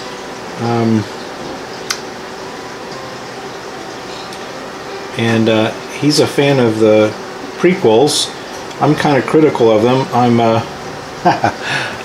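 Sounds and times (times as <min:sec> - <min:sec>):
steady room hiss: 0:00.0 - 0:12.0.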